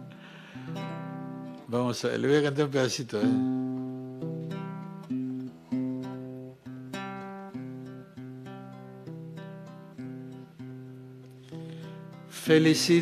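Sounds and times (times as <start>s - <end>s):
electro-acoustic guitar chords: 0.0s - 13.0s.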